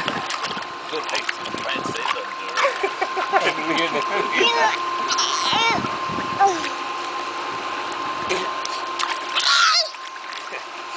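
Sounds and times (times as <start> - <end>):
pool water splashing: 0.0 - 10.9
child squealing: 4.4 - 5.8, 9.4 - 10.0.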